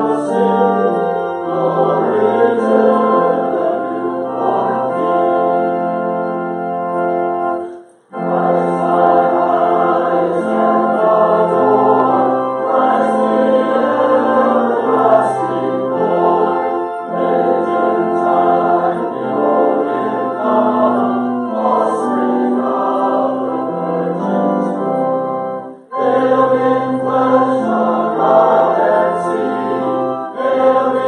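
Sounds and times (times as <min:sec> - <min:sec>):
choir and congregation singing hymn: 0:00.0 - 0:31.0
organ accompaniment: 0:00.0 - 0:31.0.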